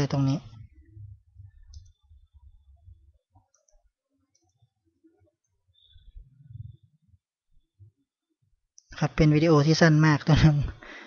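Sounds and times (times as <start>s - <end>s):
low background rumble: 0.1s - 3.8s.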